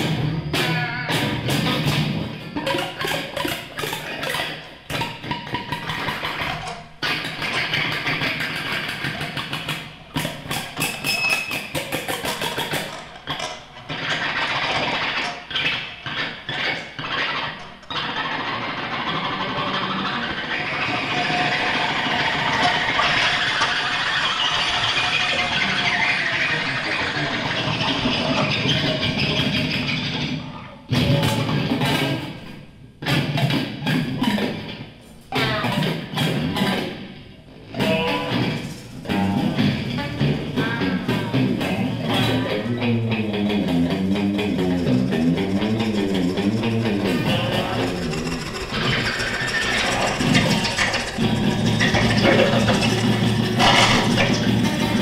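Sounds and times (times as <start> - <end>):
experimental noise music: 0.0 - 55.0
stuttering clicks: 39.9 - 55.0.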